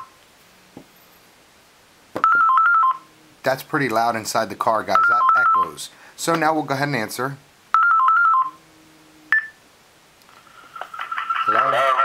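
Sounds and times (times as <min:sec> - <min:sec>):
faint low hum: 0:00.0 - 0:12.0
electronic telephone tones: 0:02.2 - 0:03.1, 0:04.9 - 0:05.7, 0:07.7 - 0:08.6, 0:09.3 - 0:09.6.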